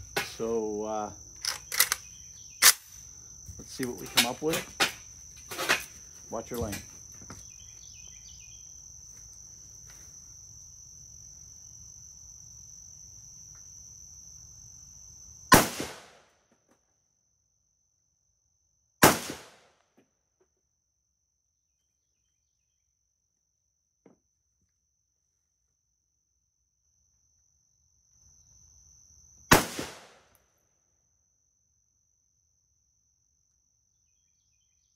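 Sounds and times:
insects trilling: 0:00.0 - 0:16.3, 0:21.8 - 0:23.1, 0:26.8 - 0:30.0, 0:31.1 - 0:34.9
rifle shots echoing: 0:19.0 - 0:19.6, 0:29.5 - 0:30.2.

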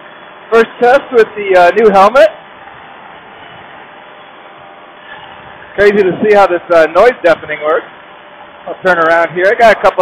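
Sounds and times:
engine and wind hiss: 0:00.0 - 0:10.0.

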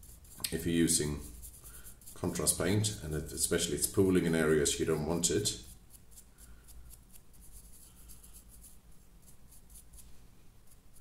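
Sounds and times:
paintbrush scratchy strokes: 0:00.0 - 0:11.0.

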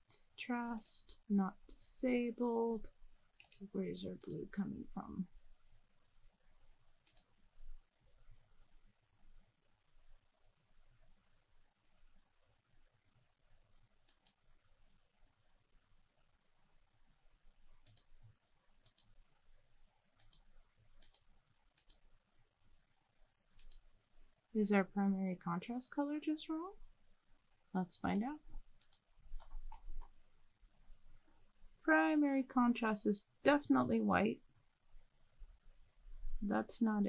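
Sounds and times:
computer mouse clicks: 0:03.3 - 0:04.5, 0:07.0 - 0:07.4, 0:14.0 - 0:14.5, 0:17.8 - 0:18.2, 0:18.8 - 0:19.2, 0:20.1 - 0:22.1, 0:23.5 - 0:23.9, 0:28.0 - 0:30.2.

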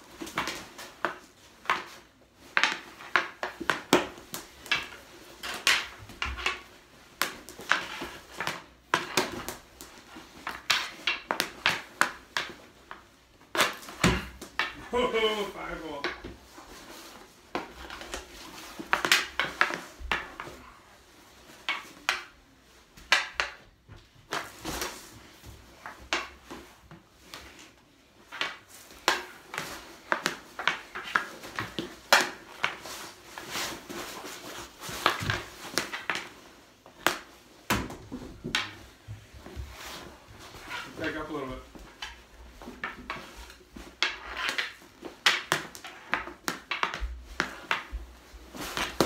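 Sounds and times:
hockey ball striking pads and floor: 0:00.1 - 0:20.7, 0:21.4 - 0:49.0.

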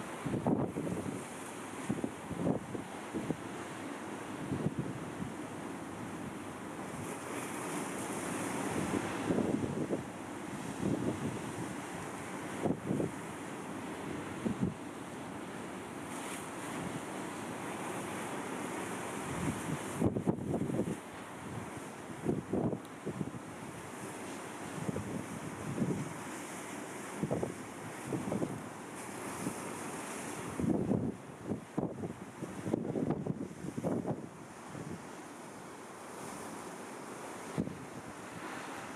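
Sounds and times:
wind buffeting microphone: 0:00.0 - 0:03.4, 0:04.4 - 0:05.4, 0:08.4 - 0:13.2, 0:19.2 - 0:23.8, 0:24.6 - 0:26.3, 0:27.1 - 0:35.0
sea surf rushing: 0:00.0 - 0:38.9.

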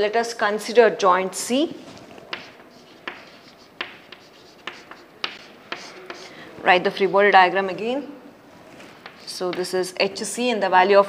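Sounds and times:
faint chalk strokes: 0:01.8 - 0:09.8
chalk tapping on chalkboard: 0:02.3 - 0:06.3, 0:09.0 - 0:09.7.

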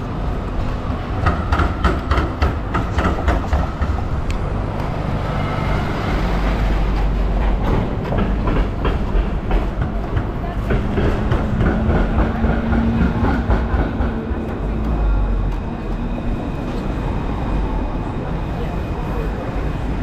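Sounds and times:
city street noise: 0:00.0 - 0:20.0
tram rumbling on rails: 0:00.0 - 0:20.0
wheels clacking on track: 0:00.0 - 0:20.0.

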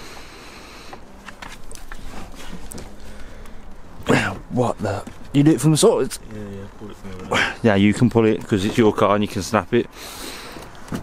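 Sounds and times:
upholstery rustling: 0:01.0 - 0:09.2.

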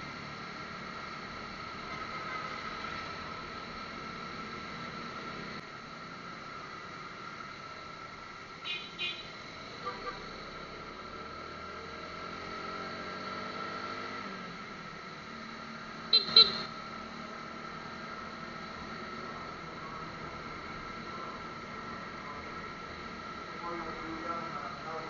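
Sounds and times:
motorcycle engine accelerating: 0:10.5 - 0:14.9
constant high tones: 0:16.1 - 0:16.8
short double beep: 0:16.2 - 0:16.6.

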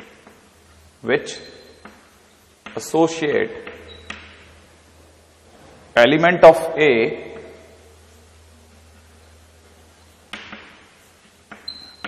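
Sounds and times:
low steady hum: 0:00.0 - 0:12.0
chalk tapping on blackboard: 0:01.8 - 0:02.9, 0:10.3 - 0:11.8.

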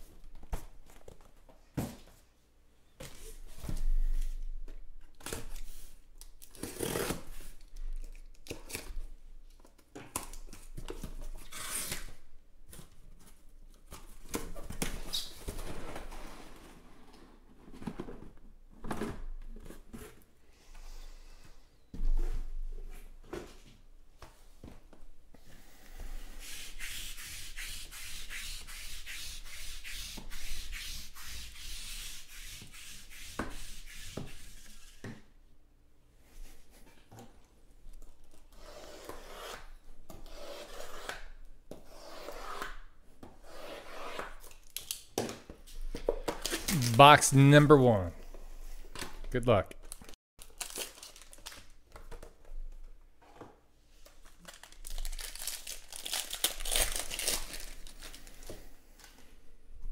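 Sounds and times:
knife slitting packing tape: 0:06.4 - 0:08.9, 0:11.4 - 0:12.2, 0:54.6 - 0:58.0.

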